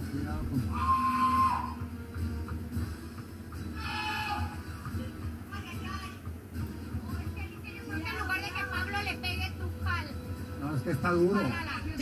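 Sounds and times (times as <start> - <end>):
low background music: 0.0 - 12.0.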